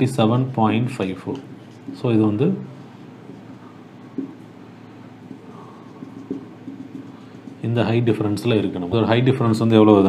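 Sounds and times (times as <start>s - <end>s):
marker on whiteboard: 0.0s - 9.8s
low room hum: 0.0s - 10.0s.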